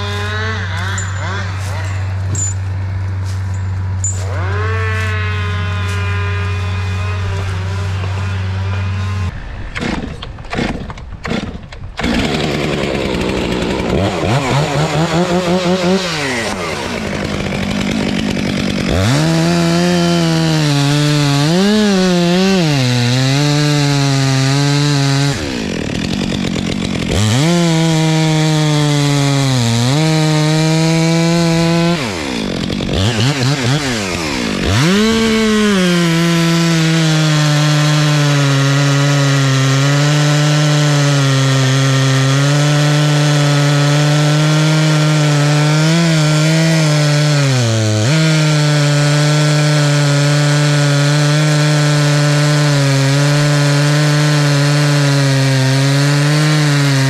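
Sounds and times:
chainsaw cutting wood: 0.0s - 57.0s.

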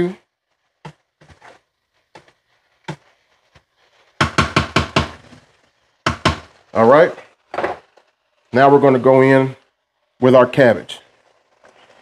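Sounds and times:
spatula stirring food in skillet: 0.3s - 10.3s, 11.0s - 12.0s
spatula knocking against pan: 4.2s - 5.1s.

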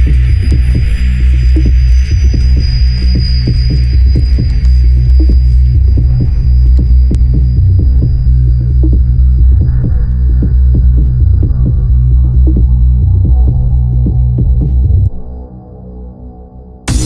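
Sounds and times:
electronic music with bass: 0.0s - 16.2s.

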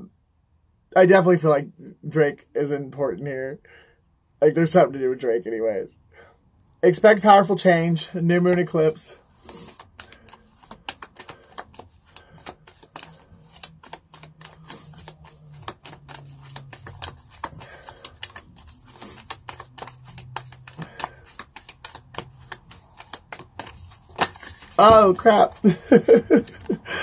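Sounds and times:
cards being shuffled: 8.5s - 26.8s.

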